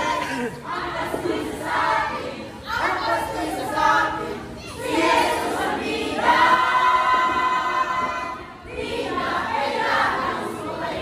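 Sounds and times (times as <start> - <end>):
choir singing: 0.0 - 11.0.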